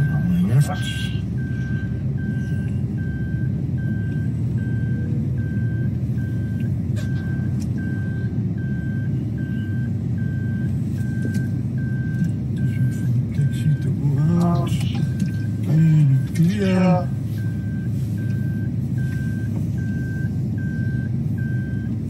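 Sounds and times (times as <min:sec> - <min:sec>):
car engine and road rumble: 0:00.0 - 0:22.0.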